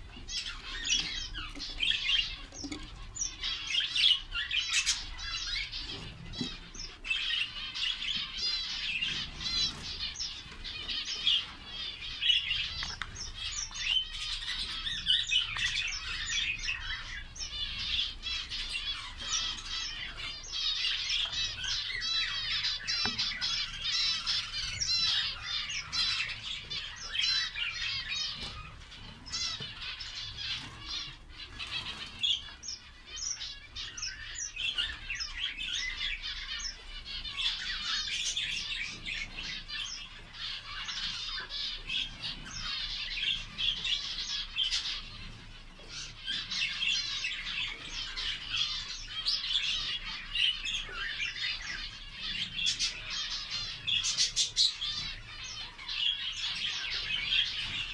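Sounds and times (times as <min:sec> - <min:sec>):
cage birds chirping: 0:00.0 - 0:57.9.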